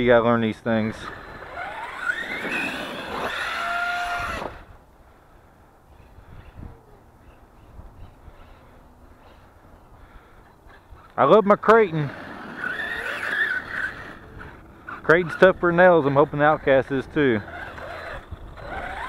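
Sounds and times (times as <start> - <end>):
electric rc truck motor whining: 0.4 - 4.8, 10.4 - 19.0.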